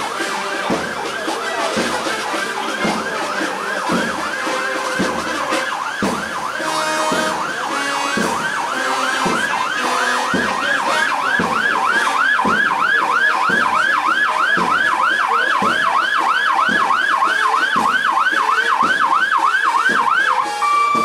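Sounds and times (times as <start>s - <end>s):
fire engine siren yelp: 0.0s - 21.0s.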